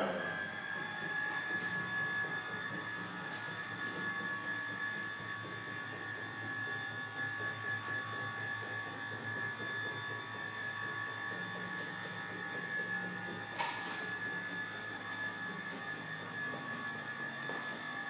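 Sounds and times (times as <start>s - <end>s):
stairlift motor whining: 0.0s - 18.0s.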